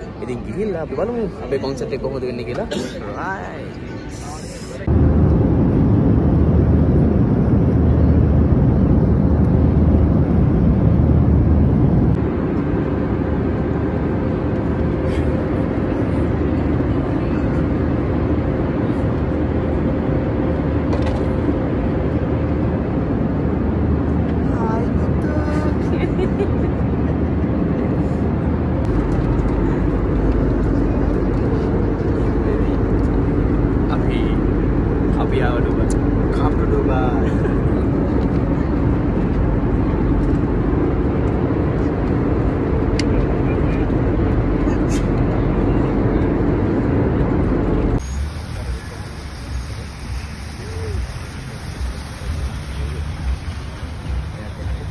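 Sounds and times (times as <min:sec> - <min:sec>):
faint passenger voices: 0:00.0 - 0:10.2, 0:12.8 - 0:23.4, 0:24.0 - 0:54.9
airliner cabin engine drone: 0:00.0 - 0:54.9.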